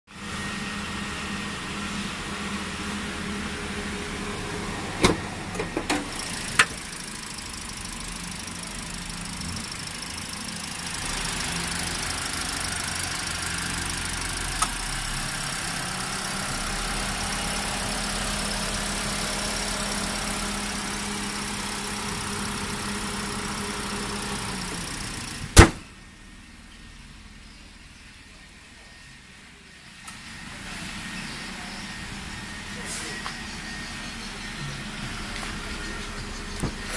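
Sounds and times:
car engine idling: 0:00.1 - 0:36.9.

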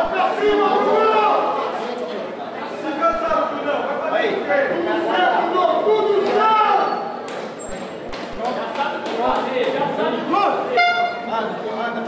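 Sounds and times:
voices talking and calling out: 0:00.0 - 0:12.0
short buzzing horn: 0:10.7 - 0:11.3.

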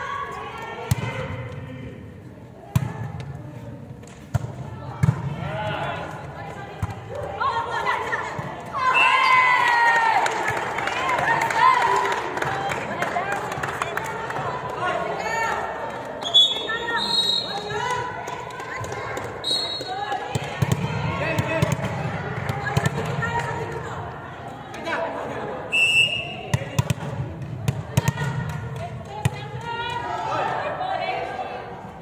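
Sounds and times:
players chattering: 0:00.0 - 0:32.0
volleyball bouncing on floor: 0:04.1 - 0:05.4, 0:17.6 - 0:23.7, 0:26.4 - 0:29.9.

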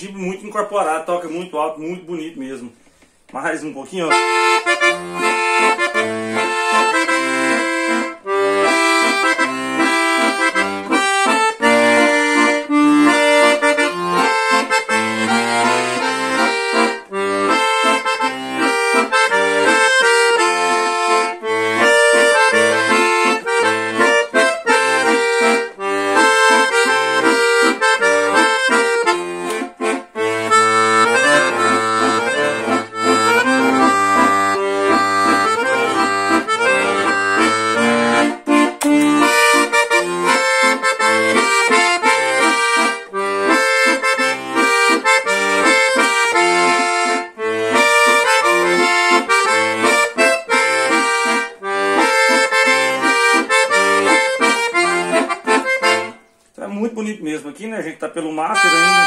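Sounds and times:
accordion melody with chords: 0:00.0 - 0:59.0.

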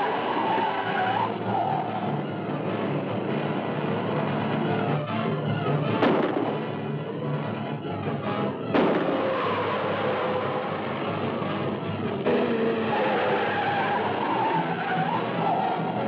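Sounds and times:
wavering squeal: 0:00.0 - 0:02.2, 0:12.3 - 0:16.0
tyres skidding on dirt: 0:00.0 - 0:07.6, 0:08.4 - 0:16.0
background music: 0:00.0 - 0:16.0
car engine running hard: 0:00.0 - 0:16.0.

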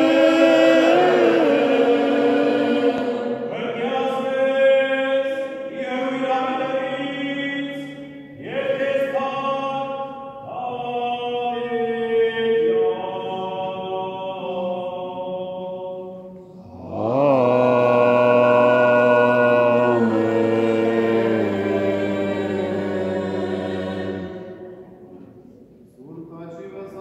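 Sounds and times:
liturgical chant: 0:00.0 - 0:27.0.

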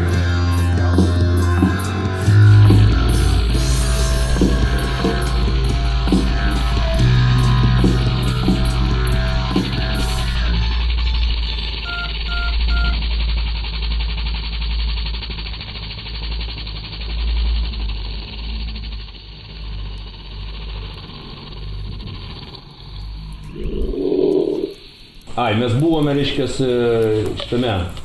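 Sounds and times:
short electronic beeps: 0:11.1 - 0:13.0.

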